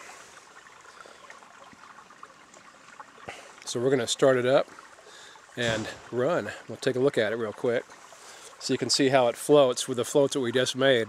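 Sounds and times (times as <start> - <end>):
flowing river water: 0.0 - 11.0.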